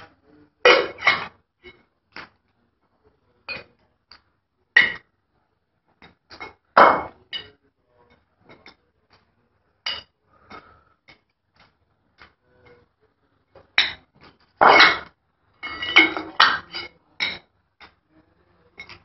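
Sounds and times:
bottles and shaker tins clinking: 13.7s - 18.0s, 18.8s - 19.0s.

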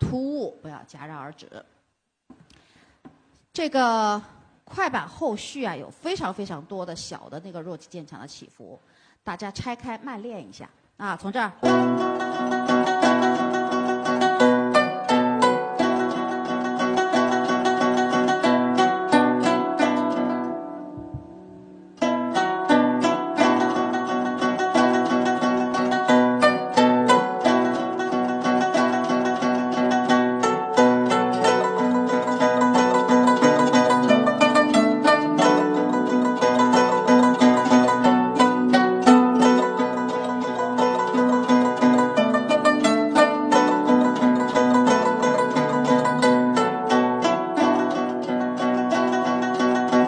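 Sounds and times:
zither plucked notes: 11.6s - 50.0s.

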